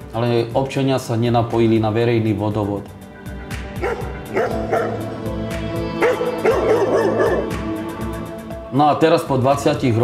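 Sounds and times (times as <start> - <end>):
music with steady beat: 2.9 - 8.8
dog barking: 3.8 - 5.1, 6.0 - 7.6.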